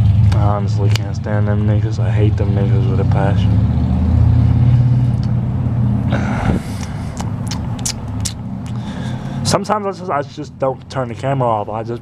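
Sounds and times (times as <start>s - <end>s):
vehicle engine low rumble: 0.0s - 12.0s.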